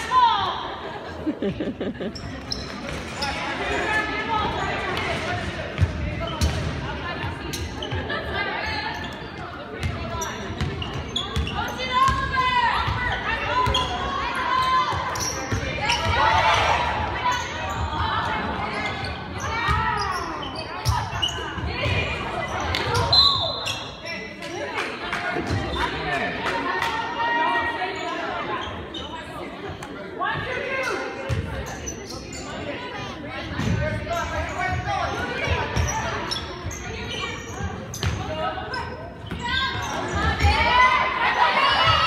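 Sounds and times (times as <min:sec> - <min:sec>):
basketball bouncing on court: 0:05.8 - 0:06.8, 0:09.8 - 0:13.9, 0:31.3 - 0:31.5, 0:37.6 - 0:38.3.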